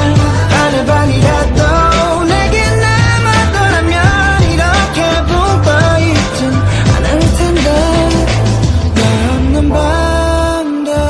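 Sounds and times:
deep bass line: 0:00.0 - 0:10.6.

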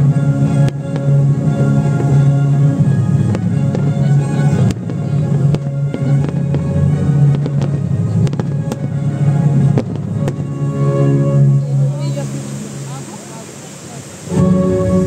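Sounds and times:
firework bangs: 0:00.0 - 0:11.1
loud music with sustained notes: 0:00.0 - 0:13.2, 0:14.3 - 0:15.0.

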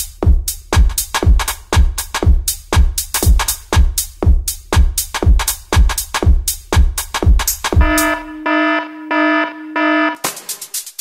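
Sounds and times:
alarm-like buzzer tone: 0:07.8 - 0:10.3.

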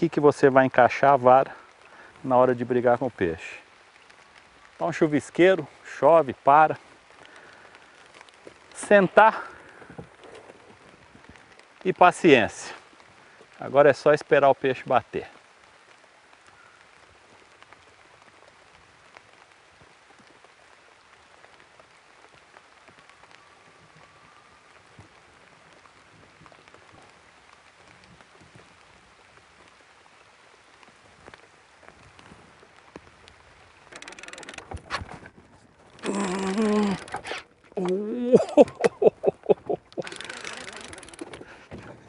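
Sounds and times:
light rain pattering on water: 0:00.0 - 0:42.0
fishing reel clicker ratcheting: 0:33.9 - 0:34.7, 0:36.4 - 0:37.2, 0:40.0 - 0:41.4.

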